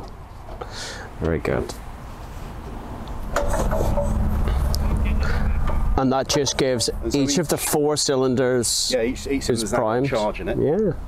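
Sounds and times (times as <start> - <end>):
faint voices: 3.6 - 7.8.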